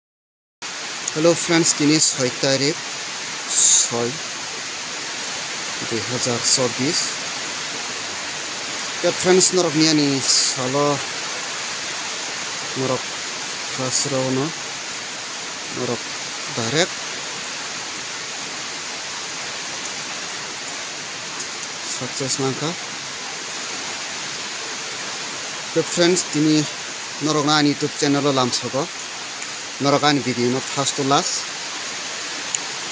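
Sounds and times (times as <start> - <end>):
steady background hiss: 0.6 - 32.9
person speaking: 1.1 - 2.8, 3.5 - 4.2, 5.8 - 7.2, 9.0 - 11.1, 12.7 - 13.0, 13.7 - 14.6, 15.7 - 17.0, 21.8 - 22.8, 25.7 - 28.9, 29.8 - 31.5.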